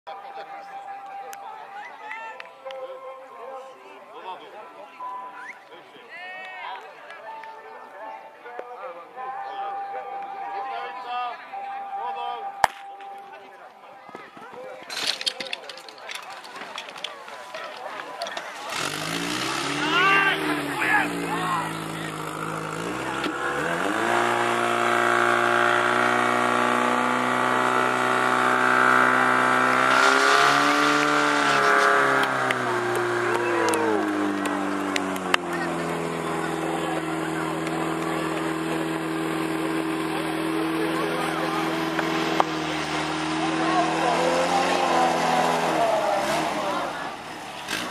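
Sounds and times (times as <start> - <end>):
pump engine running: 18.6 - 46.8
people shouting: 19.4 - 21.8, 32.8 - 34.9.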